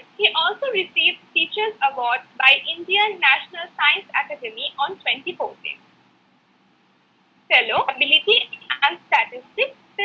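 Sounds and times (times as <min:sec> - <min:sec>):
woman speaking over video call: 0:00.0 - 0:05.8, 0:07.5 - 0:10.0.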